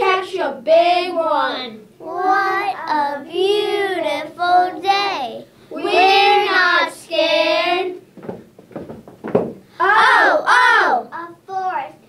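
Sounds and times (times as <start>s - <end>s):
soft footsteps on floor: 8.1s - 9.7s.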